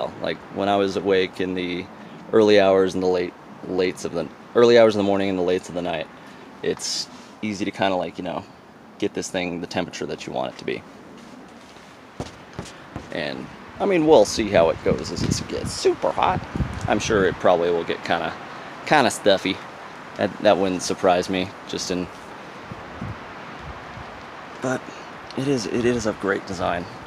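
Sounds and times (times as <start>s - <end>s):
low background hiss: 0.0s - 27.0s
wind rustling through trees: 0.0s - 27.0s
soft knocks: 12.2s - 13.2s.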